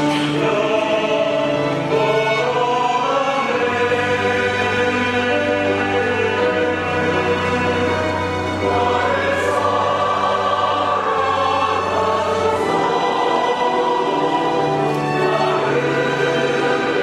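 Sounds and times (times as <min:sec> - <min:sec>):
chamber orchestra: 0:00.0 - 0:17.0
choir singing: 0:00.0 - 0:17.0.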